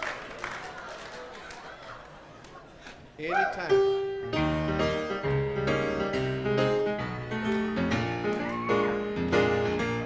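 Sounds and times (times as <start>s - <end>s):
grand piano chords: 3.7s - 10.0s.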